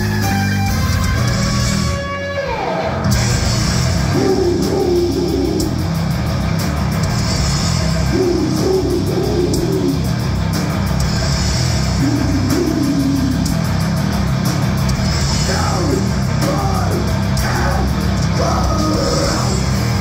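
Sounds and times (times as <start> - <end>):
drum kit with cymbal hits: 0.0 - 2.0, 3.0 - 20.0
bass guitar: 0.0 - 20.0
distorted electric guitar: 0.0 - 20.0.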